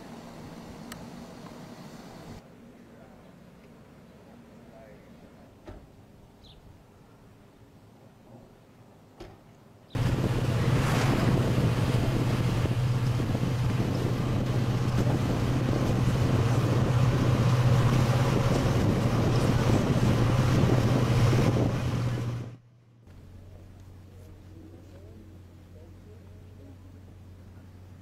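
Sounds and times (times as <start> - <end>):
road noise: 0.0 - 28.0
wind rushing: 10.0 - 22.6
low engine drone: 10.0 - 28.0.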